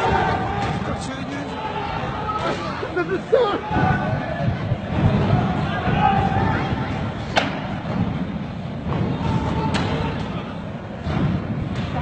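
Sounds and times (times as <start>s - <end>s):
raised voices: 0.0s - 7.3s
sharp bangs echoing in a hall: 0.0s - 12.0s
rumble of commotion: 2.8s - 12.0s.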